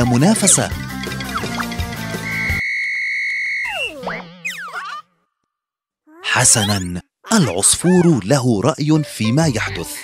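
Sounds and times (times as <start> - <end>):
background music: 0.0 - 2.6, 7.6 - 10.0
cartoon whistle blast: 2.2 - 4.8.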